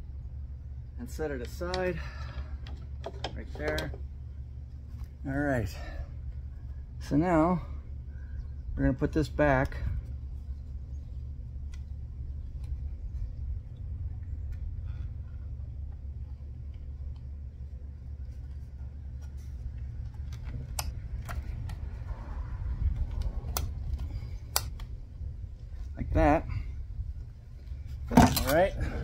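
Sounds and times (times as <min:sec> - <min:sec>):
low rumble: 0:00.0 - 0:29.0.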